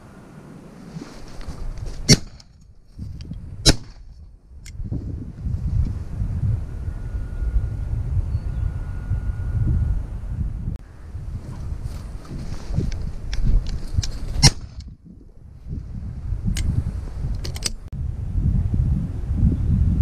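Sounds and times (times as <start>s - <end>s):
wind buffeting microphone: 0.0s - 20.0s
shotgun shots: 2.1s - 2.4s, 3.6s - 4.0s.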